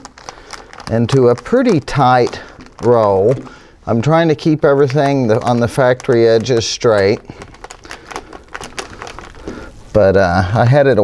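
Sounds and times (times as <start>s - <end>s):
plastic film crinkling: 0.0s - 11.0s.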